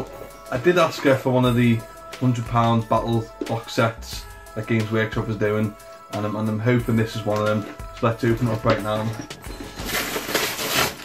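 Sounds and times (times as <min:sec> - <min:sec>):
wrapping paper tearing: 0:09.7 - 0:11.0.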